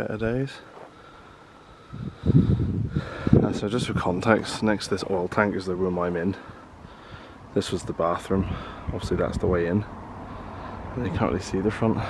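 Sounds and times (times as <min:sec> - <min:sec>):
wind buffeting microphone: 0:01.8 - 0:12.0.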